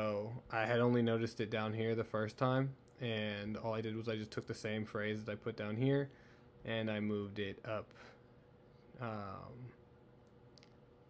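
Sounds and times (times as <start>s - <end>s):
man saying um: 9.0s - 9.8s.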